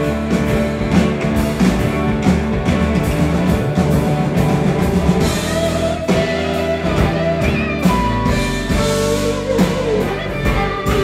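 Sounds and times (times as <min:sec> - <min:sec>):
electric guitar lead line: 0:00.0 - 0:11.0
live rock band playing: 0:00.0 - 0:11.0.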